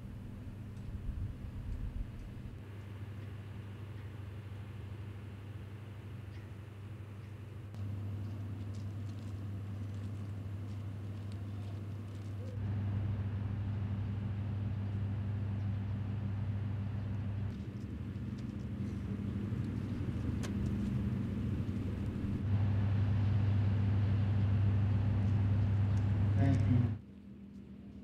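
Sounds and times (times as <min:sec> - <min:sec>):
low engine hum: 0:00.0 - 0:28.0.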